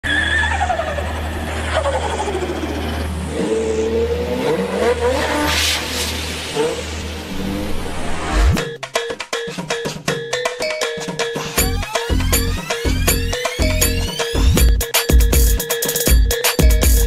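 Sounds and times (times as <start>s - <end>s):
car engine revving: 0.5s - 8.6s.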